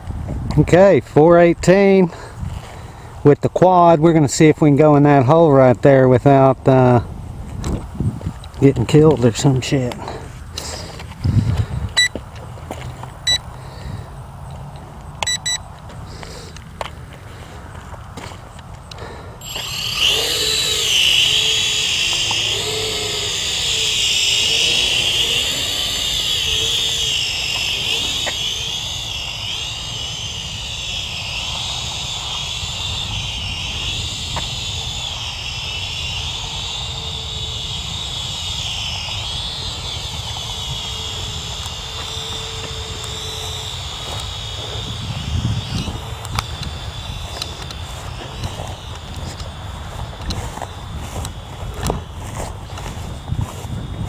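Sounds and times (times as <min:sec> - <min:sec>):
toy quadcopter motors whining: 0:00.5 - 0:54.0.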